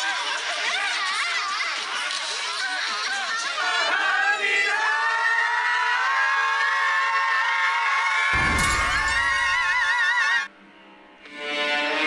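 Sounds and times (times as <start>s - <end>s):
glass breaking: 8.4s - 10.0s.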